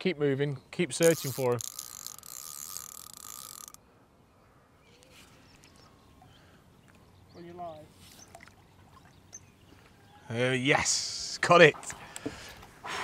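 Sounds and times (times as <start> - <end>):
fishing reel whirring: 1.0 - 3.8.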